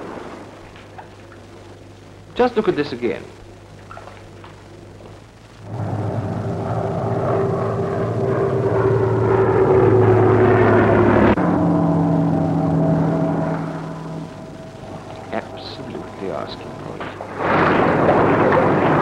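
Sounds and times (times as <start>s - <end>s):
propeller plane engine droning: 0.0s - 19.0s.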